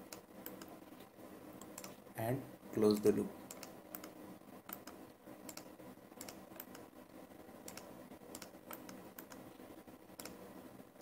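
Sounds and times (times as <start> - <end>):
computer mouse and keys clicking: 0.0 - 2.0, 2.8 - 6.9, 7.6 - 9.5, 10.1 - 10.5
low room hum: 0.0 - 11.0.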